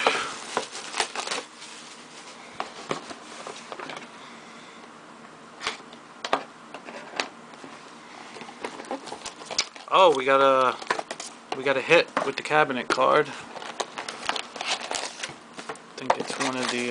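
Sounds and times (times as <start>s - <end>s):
cardboard box rustling: 0.4s - 3.7s, 8.5s - 10.1s, 13.1s - 16.9s.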